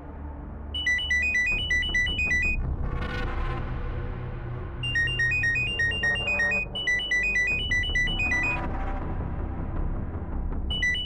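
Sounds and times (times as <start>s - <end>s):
low background music: 0.0s - 11.0s
phone ringtone beeps: 0.8s - 2.6s, 4.8s - 8.6s, 10.7s - 11.0s.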